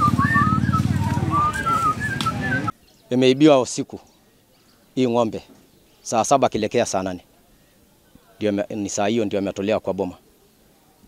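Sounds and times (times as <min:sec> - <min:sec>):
person whistling a tune: 0:00.0 - 0:02.7.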